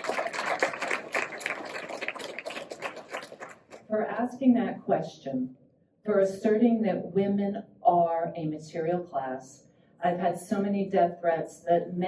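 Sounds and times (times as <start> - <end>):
audience applause: 0.0 - 3.9.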